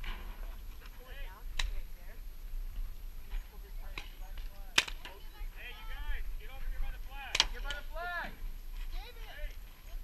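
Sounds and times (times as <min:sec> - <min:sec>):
voices of players: 0:00.5 - 0:02.3, 0:03.1 - 0:10.0.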